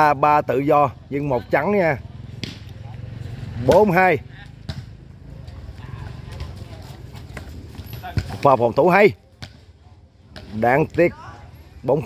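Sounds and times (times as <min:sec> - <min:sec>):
background murmur: 0:00.0 - 0:12.0
volleyball struck by hands: 0:02.3 - 0:02.8, 0:03.6 - 0:05.0, 0:09.3 - 0:09.7.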